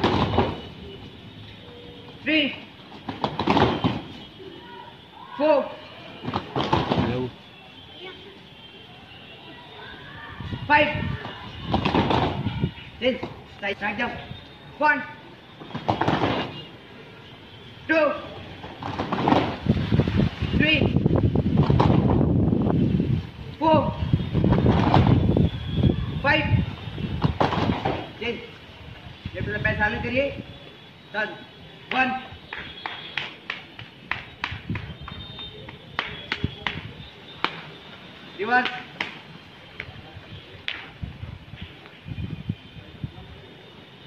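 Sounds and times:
dense loud noise: 0:00.0 - 0:07.9
bare feet landing on foam mats: 0:03.0 - 0:04.1, 0:06.2 - 0:07.1, 0:15.7 - 0:16.5, 0:18.7 - 0:19.6.

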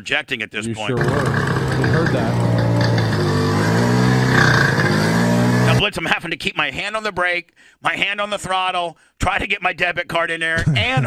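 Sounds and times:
moped engine running: 0:00.9 - 0:05.8.

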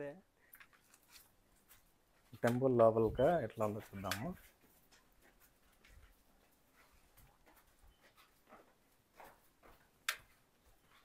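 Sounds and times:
soft ticks and scuffs: 0:00.5 - 0:11.0.

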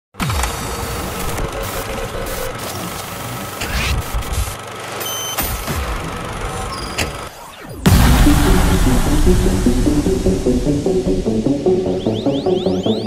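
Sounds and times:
static crackle and digital noise: 0:00.3 - 0:04.4
electronic dance music: 0:07.9 - 0:13.0.

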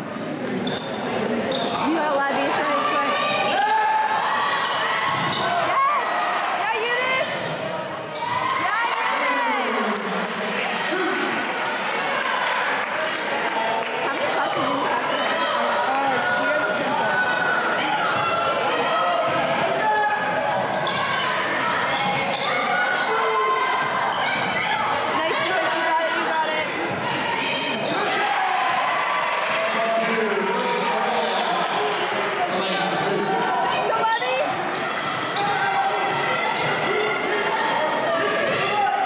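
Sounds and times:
sneakers squeaking: 0:00.4 - 0:03.7, 0:04.6 - 0:08.7, 0:11.4 - 0:12.0, 0:15.2 - 0:28.2, 0:31.0 - 0:38.8.

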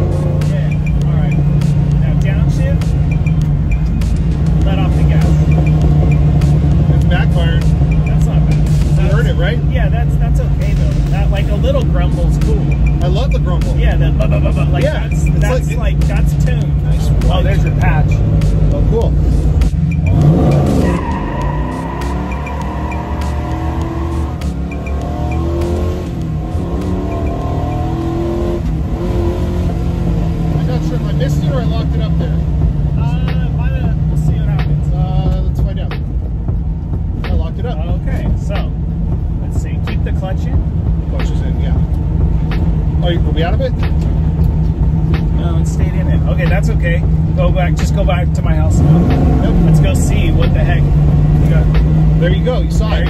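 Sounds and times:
car engine revving through gears: 0:00.0 - 0:53.0.

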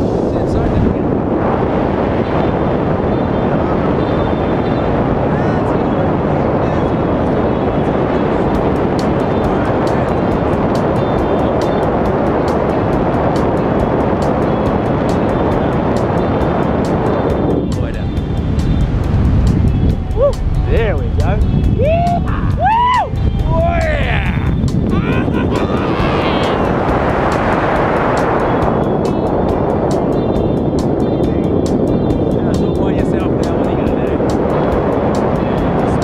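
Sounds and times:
freefall wind rushing on microphone: 0:00.0 - 0:36.0
music with a beat: 0:08.6 - 0:36.0.

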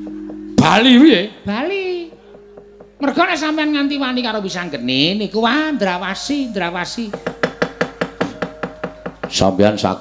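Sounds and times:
faint steady tone: 0:00.0 - 0:05.4
rapid knocking on wooden chest: 0:07.1 - 0:09.4.

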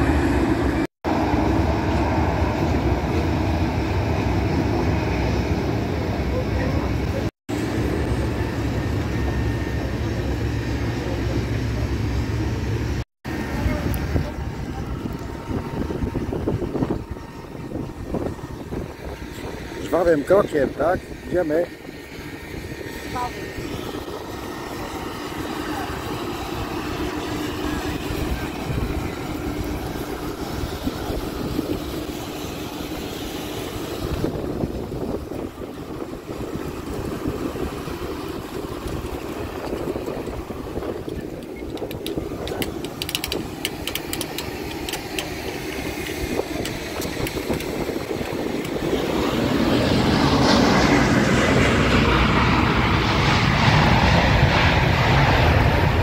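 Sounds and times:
aircraft engines roaring: 0:00.0 - 0:56.0
wind on microphone: 0:13.4 - 0:56.0.

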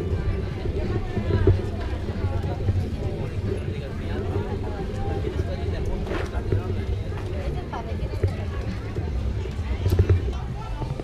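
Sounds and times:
indistinct voices of vendors: 0:00.0 - 0:11.0
steady low rumble: 0:00.0 - 0:11.0.

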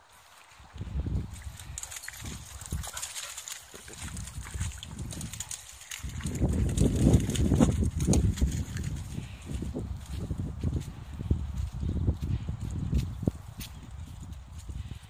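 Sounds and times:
footsteps on wet grass: 0:00.0 - 0:15.0.

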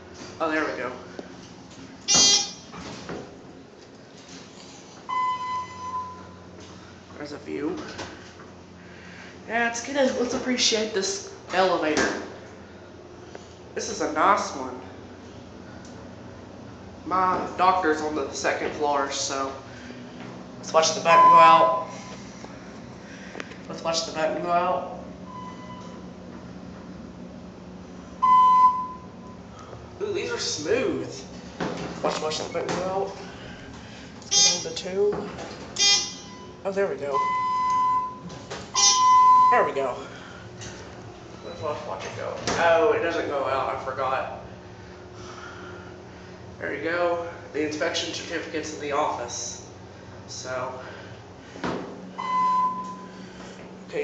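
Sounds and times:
low steady hum: 0:00.0 - 0:54.0
elevator ding: 0:05.1 - 0:06.5, 0:20.8 - 0:22.2, 0:25.2 - 0:26.2, 0:28.2 - 0:29.5, 0:35.8 - 0:39.8, 0:52.2 - 0:53.2
loud electronic beep: 0:21.1 - 0:22.1, 0:38.8 - 0:39.7.

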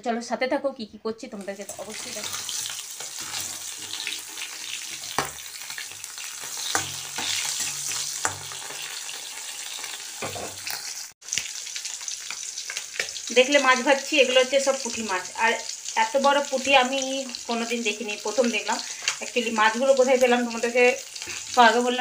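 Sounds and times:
food sizzling in oil: 0:01.3 - 0:22.0
metal spatula scraping pan: 0:01.7 - 0:11.0.

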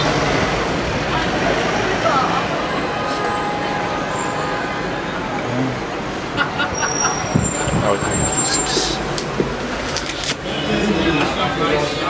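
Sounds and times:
faint indistinct voices: 0:00.0 - 0:12.0
road traffic: 0:00.0 - 0:12.0.

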